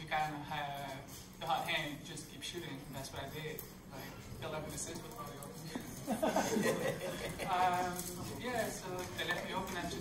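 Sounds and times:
surrounding talk: 0.0 - 10.0.

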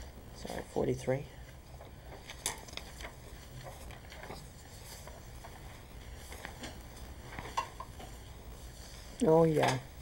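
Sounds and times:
low steady hum: 0.0 - 10.0
paper rustling: 2.2 - 6.6.

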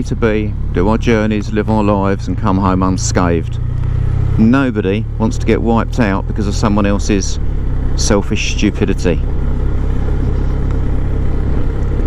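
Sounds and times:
motorcycle engine rumble: 0.0 - 12.0
wind and road noise: 0.0 - 12.0.

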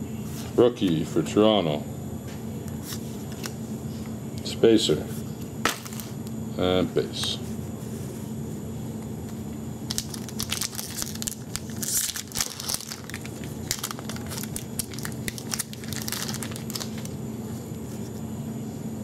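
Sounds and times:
foil wrapper crinkling and tearing: 9.9 - 17.2.

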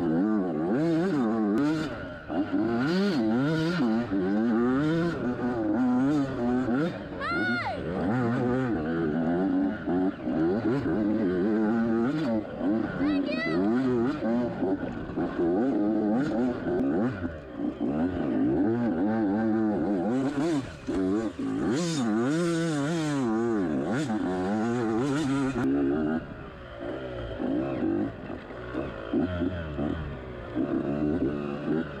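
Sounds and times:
dirt bike engine revving: 0.0 - 32.0.

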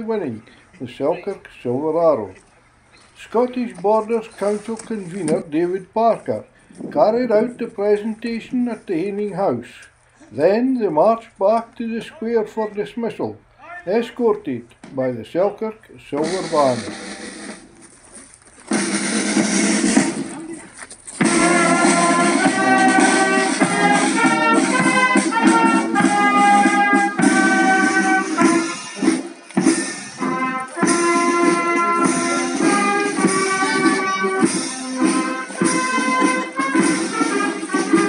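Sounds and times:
brass band playing a march: 3.3 - 9.5, 16.2 - 17.7, 18.7 - 20.5, 21.2 - 38.0.

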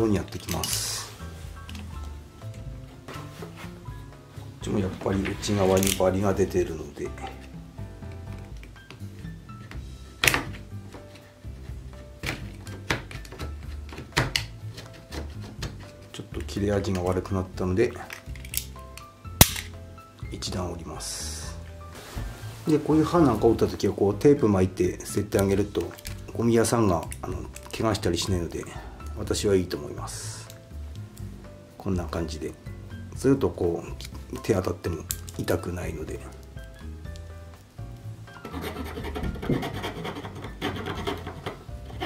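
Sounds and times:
knife blade snapping: 18.1 - 19.8
tool scraping plastic hinge: 38.4 - 42.0.

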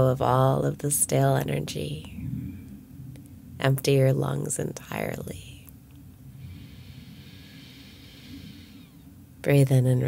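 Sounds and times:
low steady hum: 0.0 - 10.0
soft exhale through nose: 6.3 - 9.1.

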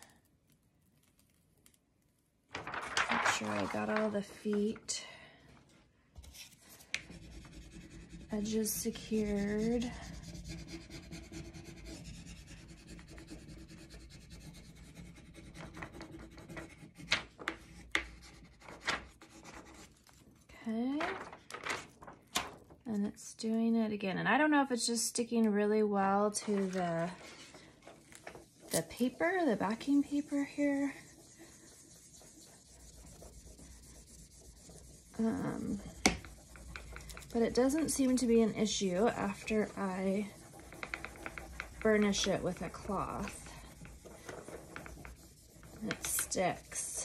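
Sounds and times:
burnishing tool rubbing plastic sheet: 2.8 - 4.7, 6.6 - 17.0, 26.1 - 47.0.

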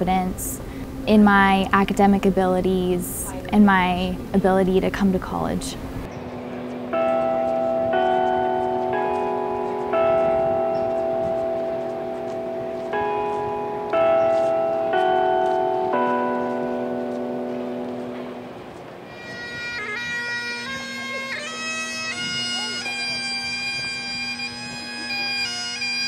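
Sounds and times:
chimes melody: 6.1 - 19.4.

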